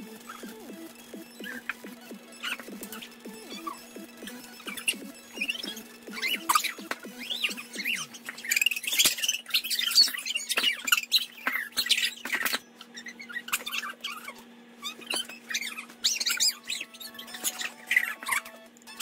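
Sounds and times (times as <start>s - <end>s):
children squealing and laughing: 4.5s - 18.6s.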